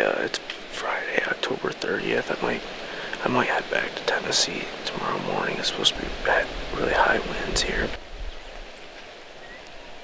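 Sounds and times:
soft steady hiss: 0.0s - 10.0s
faint bird chirp: 7.5s - 10.0s.

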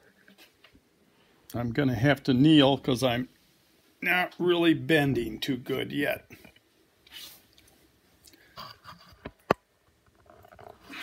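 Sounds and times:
clothing rustle: 7.0s - 8.2s.

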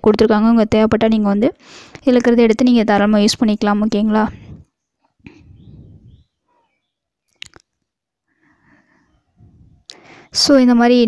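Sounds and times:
soft breathing at microphone: 4.3s - 6.7s, 8.2s - 10.4s.

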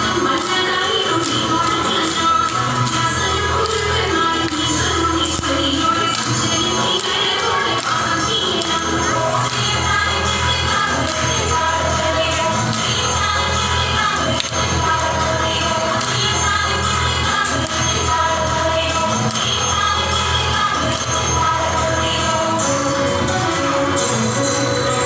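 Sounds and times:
hand claps keeping time: 0.0s - 21.8s
people singing a folk song: 0.0s - 23.4s.

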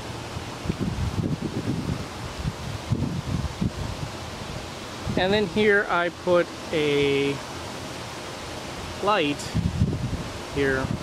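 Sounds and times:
wind buffeting microphone: 0.0s - 5.6s, 9.4s - 11.0s.

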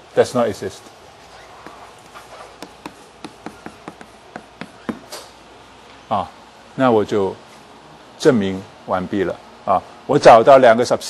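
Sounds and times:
chalk tapping on blackboard: 1.5s - 5.3s.

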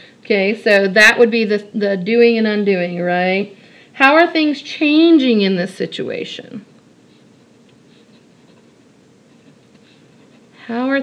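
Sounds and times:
pen scratching on paper: 7.9s - 10.6s.

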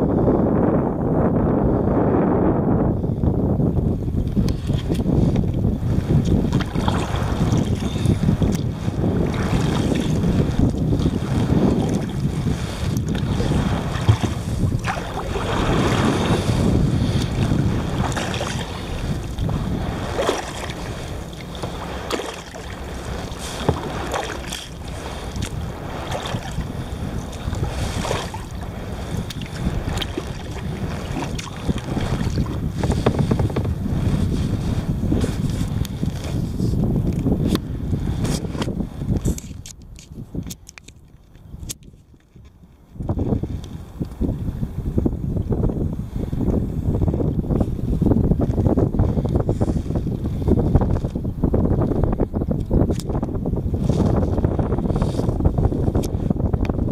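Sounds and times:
water lapping against hull: 0.0s - 56.9s
wind buffeting microphone: 0.0s - 56.9s.

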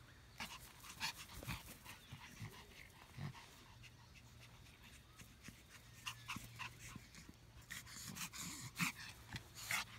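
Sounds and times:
small dog panting: 0.3s - 9.9s.

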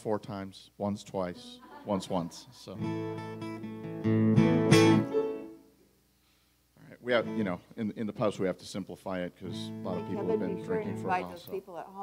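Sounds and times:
acoustic guitar chord strummed: 2.8s - 5.6s, 7.2s - 7.6s, 9.5s - 11.2s.

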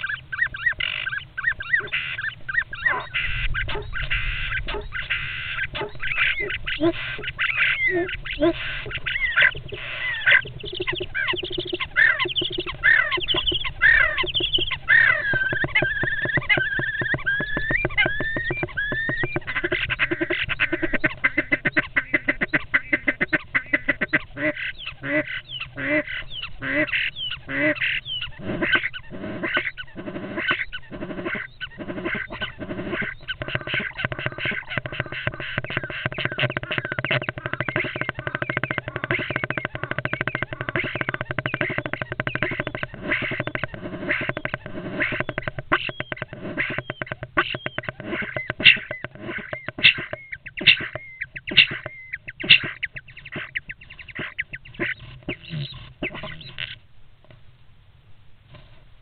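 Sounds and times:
starlings whistling: 0.0s - 56.8s.

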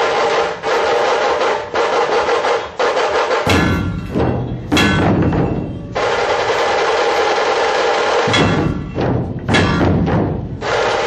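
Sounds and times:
fast drum roll: 0.0s - 11.0s.

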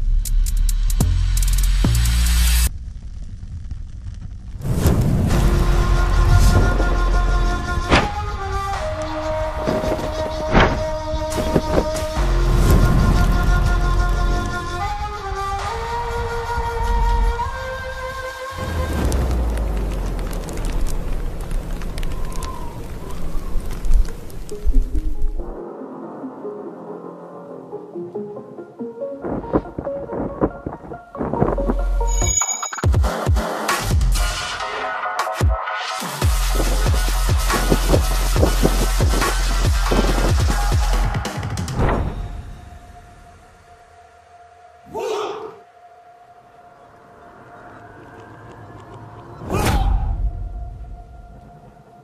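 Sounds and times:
steady low rumble: 0.0s - 9.6s
crackling hiss with sharp ticks: 0.0s - 10.0s, 18.2s - 25.5s
low rumble: 1.8s - 9.8s, 18.5s - 25.5s.

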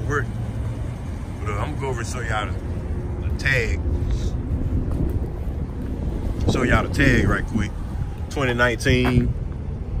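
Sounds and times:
wind rumble on microphone: 2.9s - 10.0s.

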